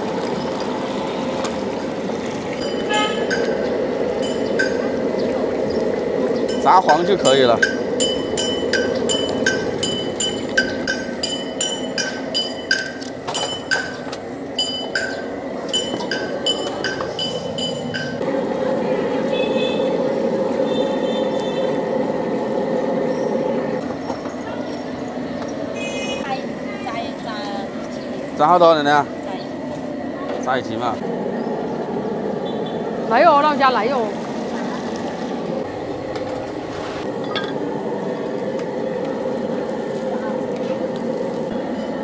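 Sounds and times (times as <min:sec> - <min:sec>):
steady background noise: 0:00.0 - 0:42.0.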